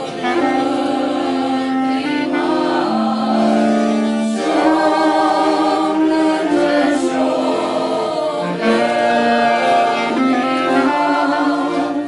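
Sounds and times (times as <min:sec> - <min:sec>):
accordion: 0:00.0 - 0:12.0
brass horn: 0:00.0 - 0:12.0
clarinet: 0:00.0 - 0:12.0
group of voices singing: 0:00.0 - 0:12.0
saxophone: 0:00.0 - 0:12.0.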